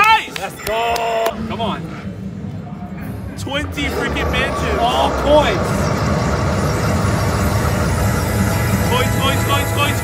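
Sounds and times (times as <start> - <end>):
slot machine blowing sound effect: 5.6 - 10.0.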